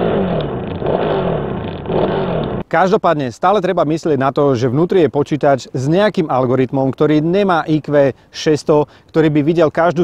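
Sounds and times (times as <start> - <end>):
motorcycle engine revving: 0.0 - 2.6.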